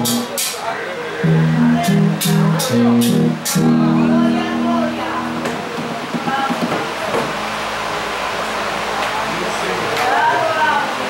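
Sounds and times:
held music chord: 0:01.2 - 0:08.8.

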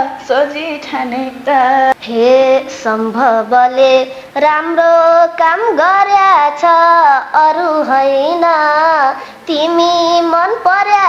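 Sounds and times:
boy singing folk song: 0:00.0 - 0:11.0.

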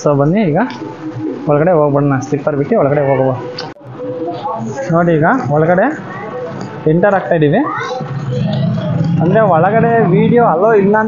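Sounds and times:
man speaking: 0:09.2 - 0:11.0.

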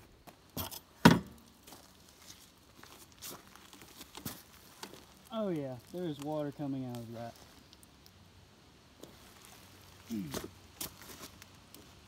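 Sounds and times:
rustling: 0:01.4 - 0:08.2, 0:09.0 - 0:12.0.

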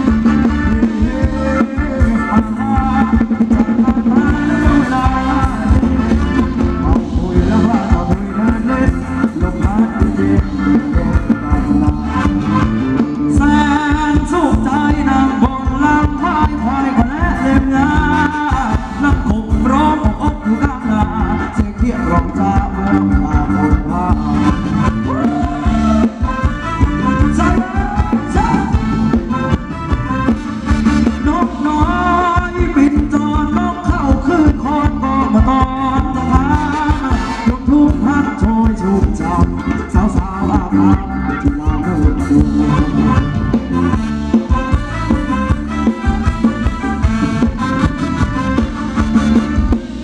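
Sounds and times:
live band music with bass beat: 0:00.0 - 0:50.0.

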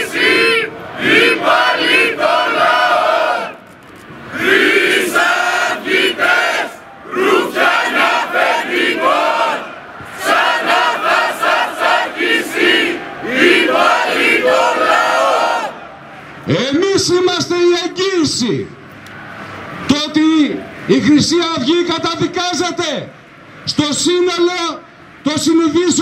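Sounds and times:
crowd chanting in unison: 0:00.0 - 0:03.6, 0:04.3 - 0:16.2.

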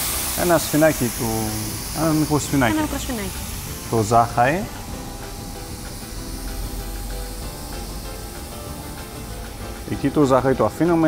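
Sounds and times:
frying pan sizzling: 0:00.0 - 0:11.0
music with held notes: 0:00.0 - 0:11.0.

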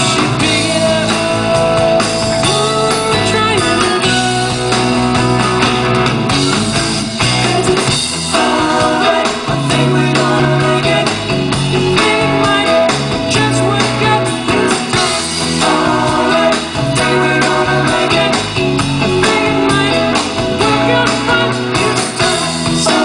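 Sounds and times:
electric guitars: 0:00.0 - 0:23.0
soft-rock band playing: 0:00.0 - 0:23.0.

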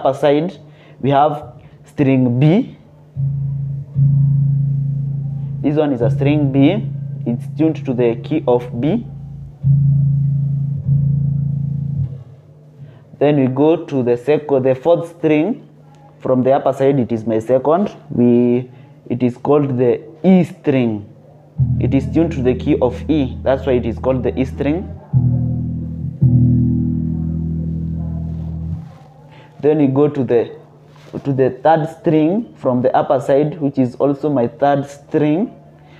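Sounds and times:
electric bass low notes plucked: 0:03.1 - 0:12.4, 0:21.6 - 0:29.0.

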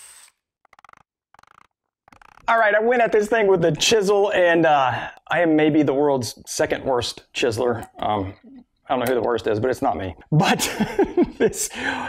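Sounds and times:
cordless drill boring into wood: 0:00.0 - 0:02.5.

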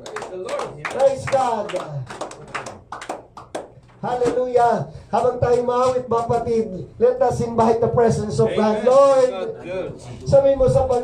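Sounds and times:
hand claps: 0:00.0 - 0:03.9.

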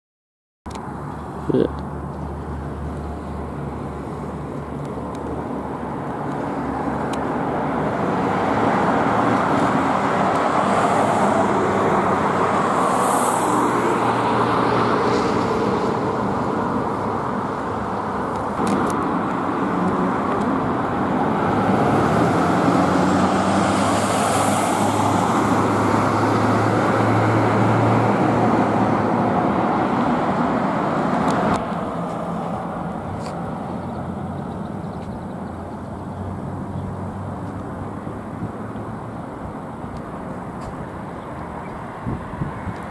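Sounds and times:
cars passing: 0:00.7 - 0:42.9.

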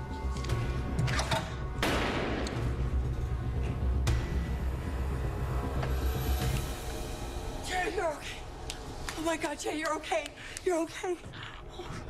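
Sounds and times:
pulsing dramatic music: 0:00.0 - 0:12.0.

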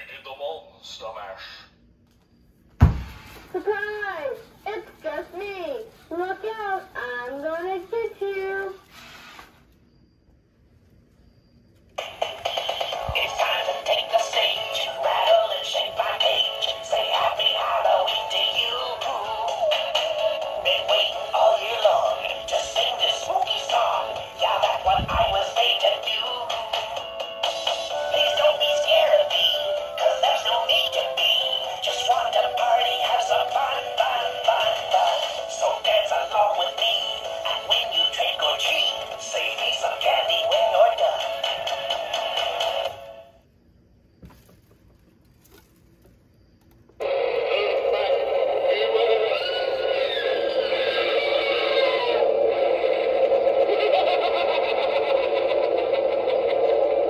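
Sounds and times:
toy playing synthetic song: 0:12.0 - 0:43.2.

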